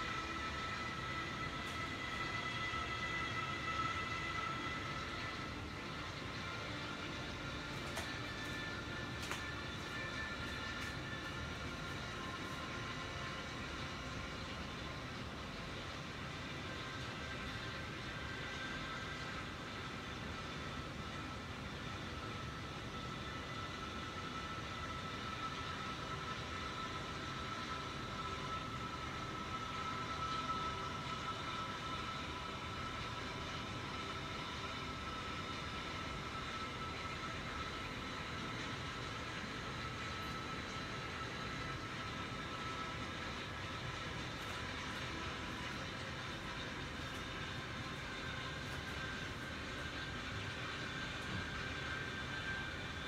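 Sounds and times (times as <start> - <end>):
background hum and hiss: 0.0 - 53.0
faint high whine: 0.0 - 53.0.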